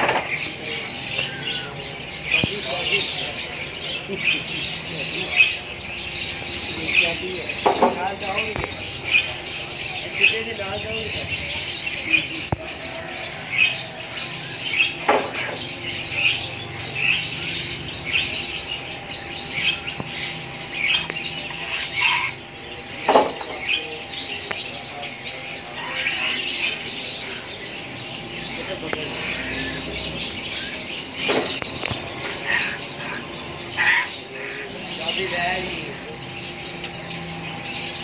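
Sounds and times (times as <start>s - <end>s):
caged birds chirping: 0.0s - 38.0s
macaw squawking harshly: 20.8s - 22.4s, 32.2s - 35.4s.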